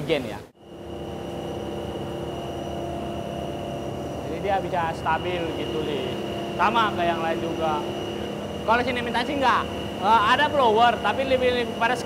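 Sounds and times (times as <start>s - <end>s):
machine drone with high whine: 0.6s - 12.0s.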